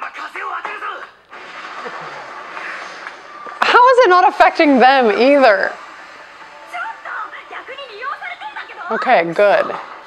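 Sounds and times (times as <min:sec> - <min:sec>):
music: 0:00.0 - 0:10.0
steady rushing noise: 0:01.3 - 0:10.0.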